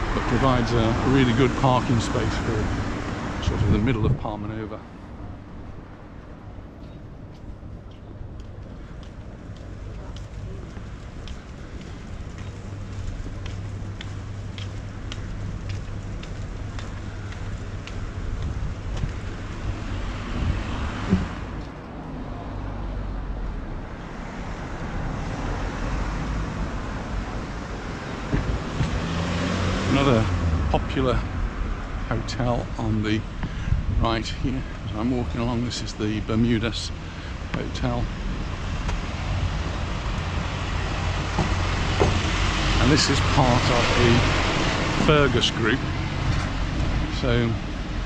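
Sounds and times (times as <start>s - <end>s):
cars passing: 0.0s - 48.0s
steady low traffic hum: 0.0s - 48.0s.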